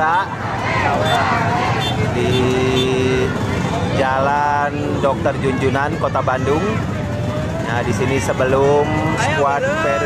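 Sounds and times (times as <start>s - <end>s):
crowd shouting: 0.0s - 10.0s
motorcycle engines: 0.0s - 10.0s.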